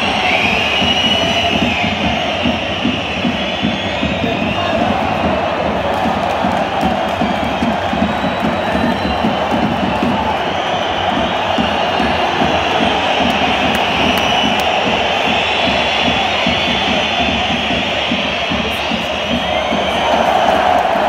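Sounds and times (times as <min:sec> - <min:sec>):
stadium crowd chanting and singing: 0:00.0 - 0:21.0.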